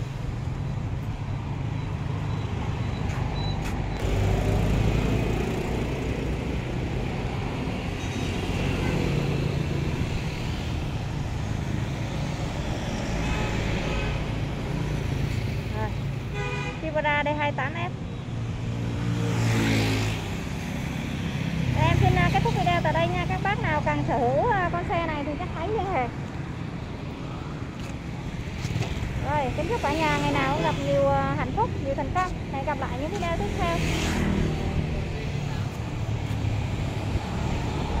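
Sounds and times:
vehicle passing by: 0:18.8 - 0:23.8, 0:33.0 - 0:38.0.

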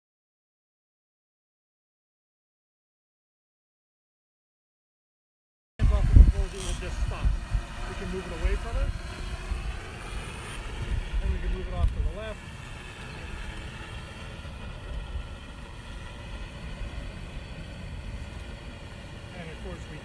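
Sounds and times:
drone propellers buzzing: 0:05.8 - 0:20.0
wind on microphone: 0:05.8 - 0:20.0.

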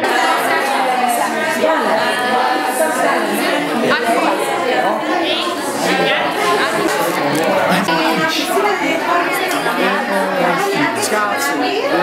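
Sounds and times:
overlapping chatter of many people: 0:00.0 - 0:12.0.

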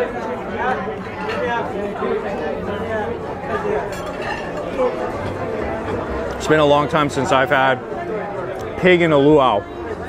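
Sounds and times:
murmur of diners talking: 0:00.0 - 0:10.0.

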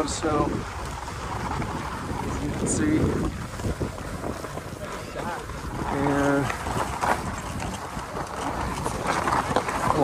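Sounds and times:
skis scraping over snow: 0:00.0 - 0:10.0
faint crowd voices: 0:04.3 - 0:06.9
small clicks and clatters: 0:05.8 - 0:10.0.

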